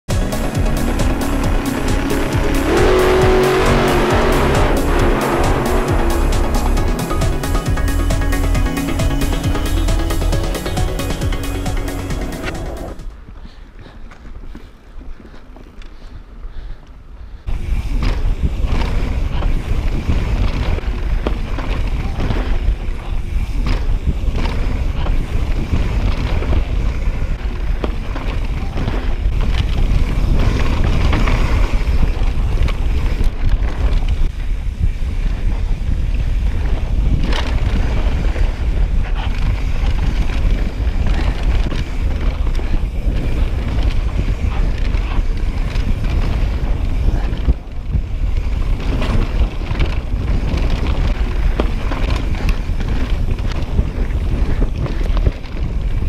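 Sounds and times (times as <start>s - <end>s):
tyres rumbling on dirt trail: 0.1s - 56.0s
bike clicks and knocks over bumps: 10.6s - 56.0s
wind buffeting microphone: 12.4s - 56.0s.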